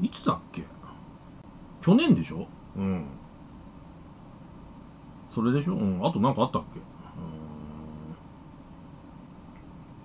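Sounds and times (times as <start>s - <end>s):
man humming mmm: 7.0s - 8.3s.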